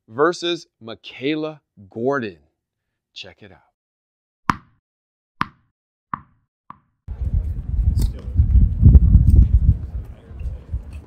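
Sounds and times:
tennis ball bouncing: 4.5 - 4.8, 5.4 - 6.9.

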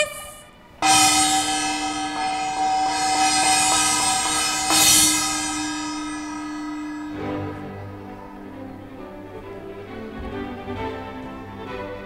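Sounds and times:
hand-held gong ringing: 0.8 - 10.8.

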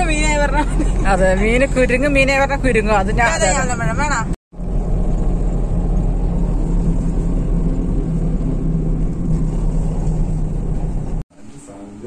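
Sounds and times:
car engine and road noise: 0.0 - 12.0
low hum: 4.6 - 11.2.

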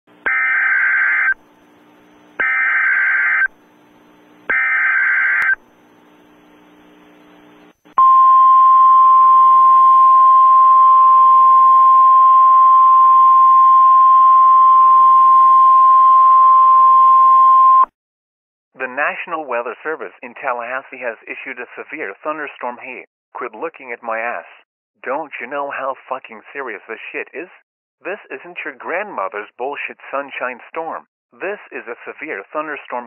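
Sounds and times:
faint radio hiss: 5.8 - 8.0.

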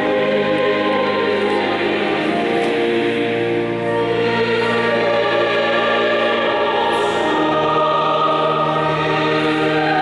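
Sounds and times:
choir singing: 0.0 - 10.0.

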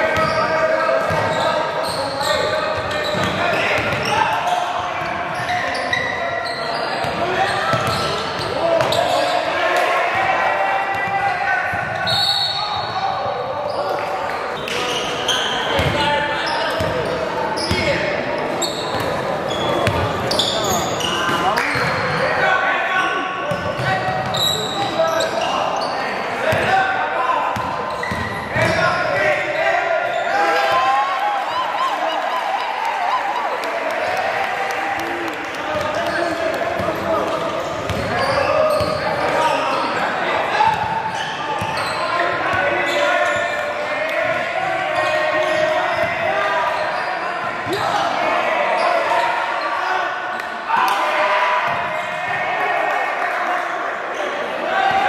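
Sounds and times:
people shouting in echoing gym: 0.0 - 55.0.

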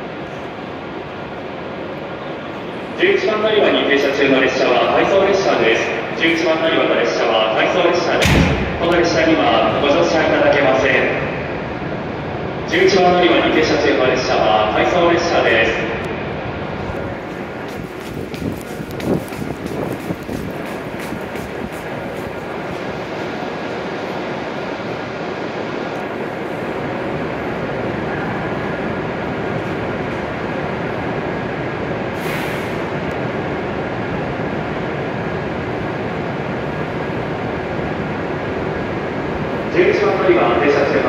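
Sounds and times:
train humming at platform: 0.0 - 41.0
short hiss: 32.2 - 32.9.

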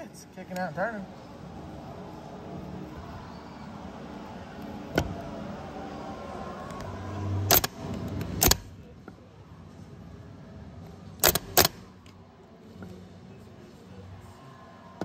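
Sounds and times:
sharp solenoid clacks: 7.5 - 7.8, 8.4 - 8.7, 11.2 - 11.8.

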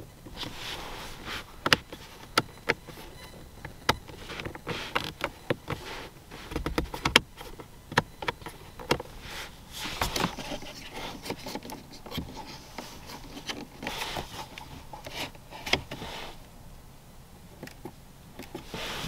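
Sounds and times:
plastic trim rubbing: 0.3 - 16.4
car switches clicking: 1.6 - 5.8, 6.5 - 9.1.

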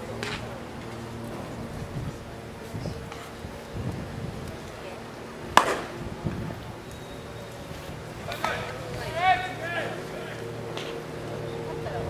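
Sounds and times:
wooden bat hitting ball: 5.6 - 5.9.

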